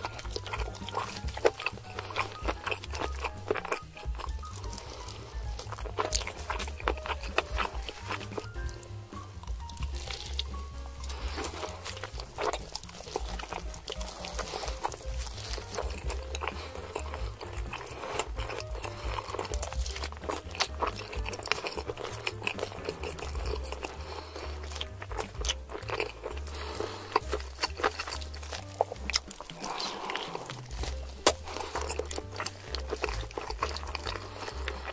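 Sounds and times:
background music with pulsing bass: 0.0s - 29.5s
wet chewing and mouth smacking: 0.0s - 34.9s.

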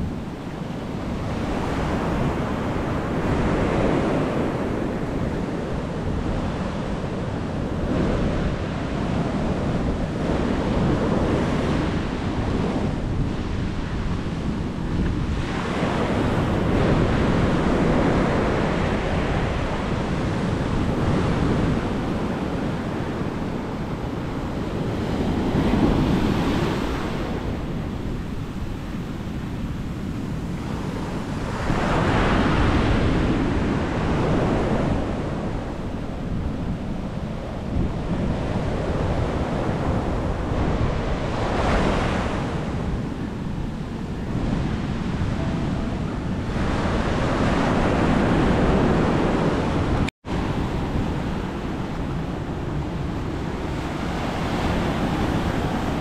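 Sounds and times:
ocean surf breaking on beach: 0.0s - 56.0s
wind buffeting microphone: 0.0s - 56.0s.

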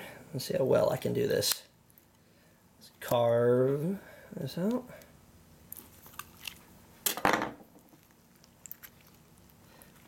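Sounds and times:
squishy crunches: 5.7s - 6.8s.

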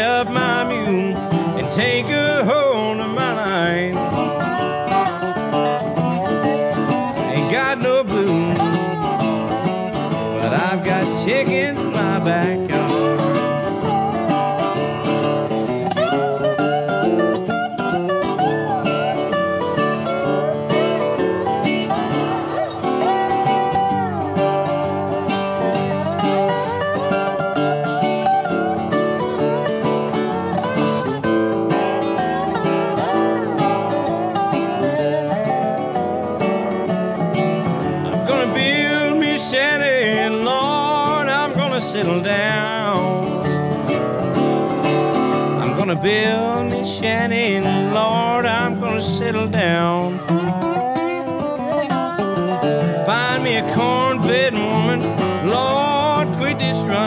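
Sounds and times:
rhythm guitar: 0.0s - 57.0s
slide guitar lead: 0.0s - 57.0s.

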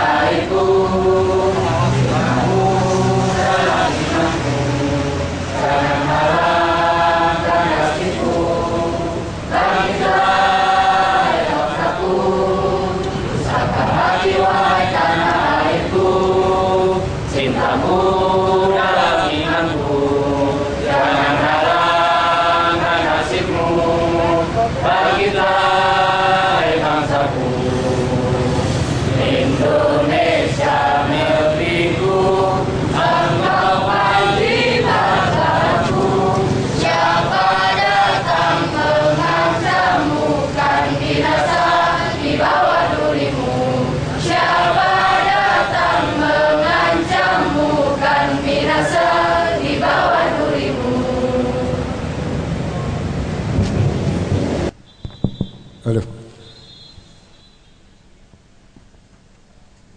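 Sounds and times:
crowd chanting in unison: 0.0s - 52.4s.

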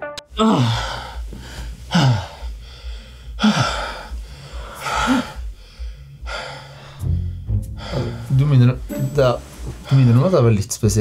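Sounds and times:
man gasping moans: 0.3s - 8.3s.

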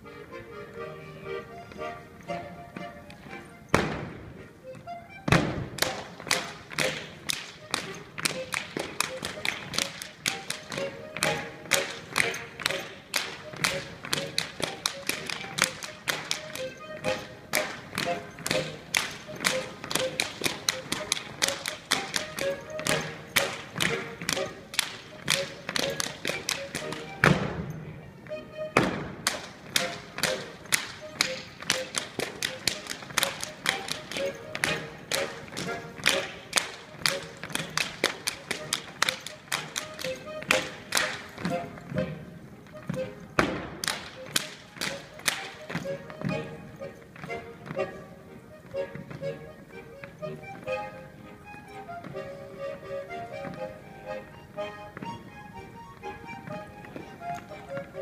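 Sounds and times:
faint music: 0.0s - 58.0s
hands slapping thighs and soles: 28.8s - 41.6s.

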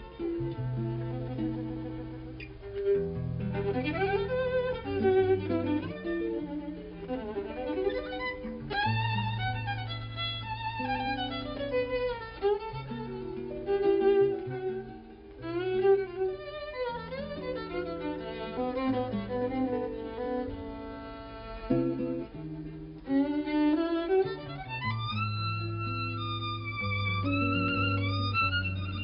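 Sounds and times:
double bass: 0.0s - 6.3s
guitar accompaniment: 0.0s - 29.0s
jazz violin bowed: 0.0s - 29.0s.

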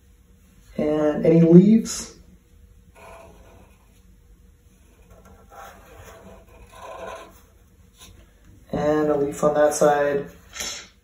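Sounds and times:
marker scratching on paper: 5.0s - 8.2s.

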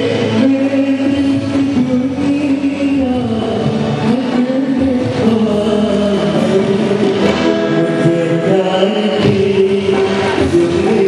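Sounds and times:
live band playing film song: 0.0s - 11.0s.

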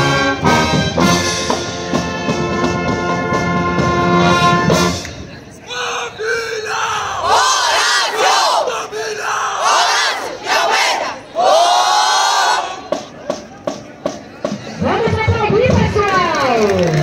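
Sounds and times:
crowd shouting and cheering: 5.3s - 13.8s.

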